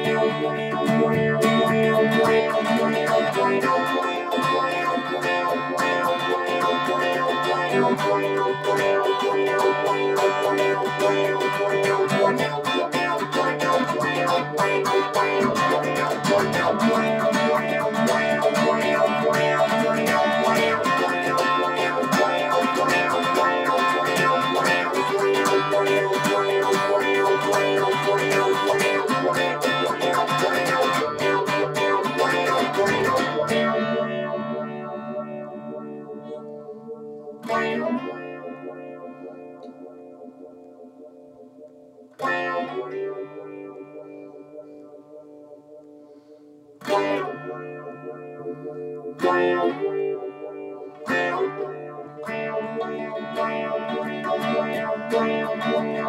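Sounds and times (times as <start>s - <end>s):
electric guitar strum: 0.0s - 56.0s
electric guitar tremolo notes: 0.0s - 56.0s.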